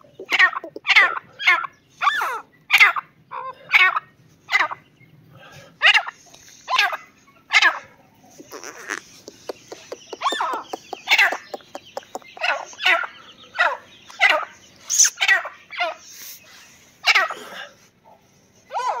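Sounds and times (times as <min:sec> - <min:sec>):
francolin calling: 0:05.9 - 0:17.3.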